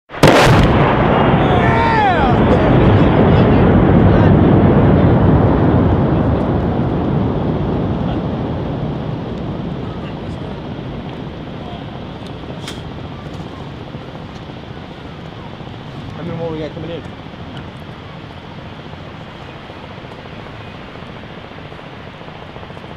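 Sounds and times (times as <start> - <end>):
mortar round exploding: 0.1 - 22.9.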